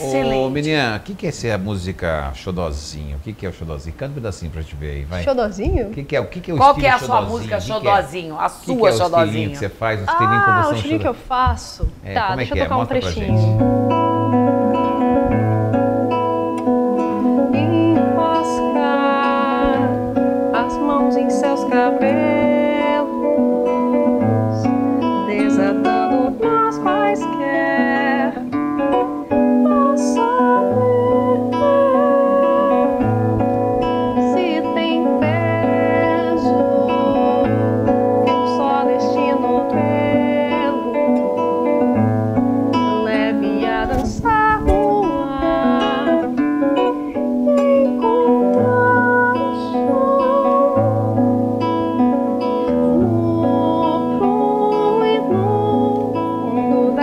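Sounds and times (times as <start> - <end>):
woman singing: 0.0 - 0.6, 6.6 - 13.6, 16.5 - 57.0
fingerpicked classical guitar: 0.0 - 2.0, 5.1 - 57.0.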